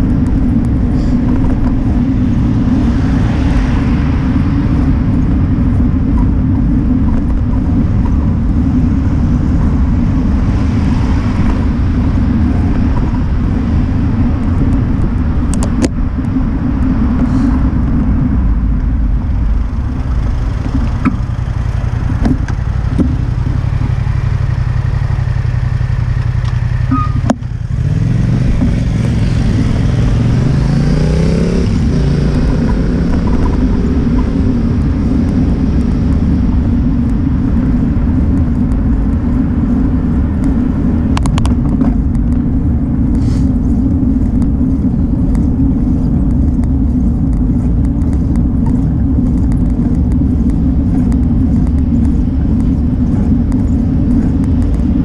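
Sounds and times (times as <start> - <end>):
vehicle engine idling and revving: 0.0 - 55.0
wind rumble on microphone: 0.0 - 55.0.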